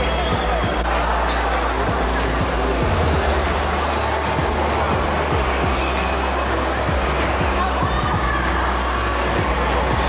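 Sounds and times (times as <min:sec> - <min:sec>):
exhibition hall crowd din: 0:00.0 - 0:10.0
music playing: 0:00.0 - 0:10.0.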